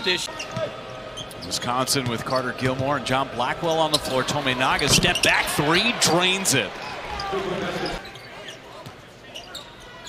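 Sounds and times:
low crowd hum: 0.0 - 10.0.

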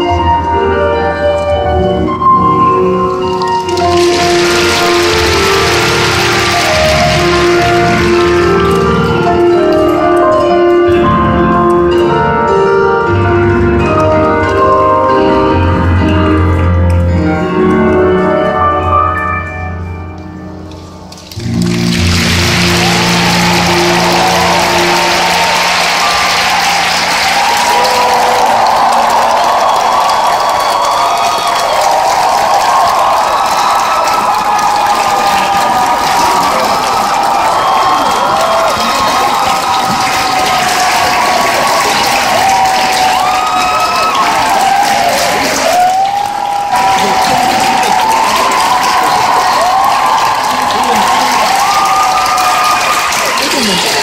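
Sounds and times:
crowd applauding and cheering: 0.0 - 54.0.

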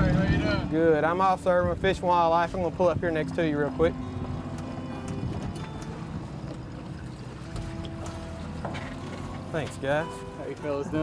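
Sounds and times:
boat motor idling: 0.0 - 11.0
soft background music: 0.1 - 11.0.

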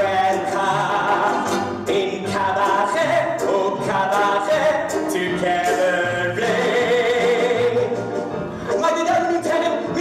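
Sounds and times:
group singing with instruments: 0.0 - 8.2.

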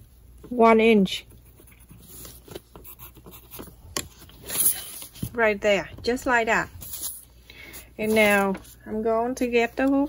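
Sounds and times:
pencil scratching on paper: 1.2 - 5.1.

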